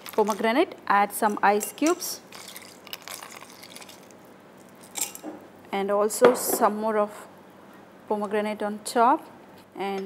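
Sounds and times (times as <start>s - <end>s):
ice cubes clinking in glass: 1.6s - 4.1s, 4.8s - 5.2s.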